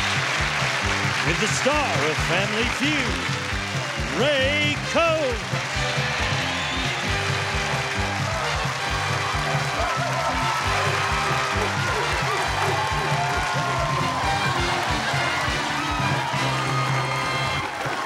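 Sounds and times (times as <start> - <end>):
upbeat music with fast beat: 0.0 - 17.7.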